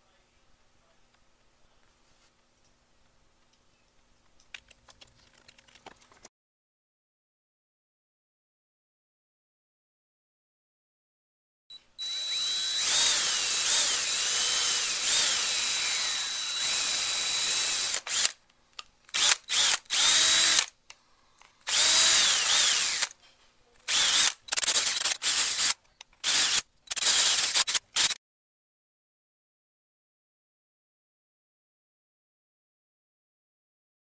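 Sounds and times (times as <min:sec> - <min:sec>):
cordless drill whine: 0:11.7 - 0:18.4, 0:19.1 - 0:20.7, 0:21.7 - 0:23.2, 0:23.9 - 0:28.2.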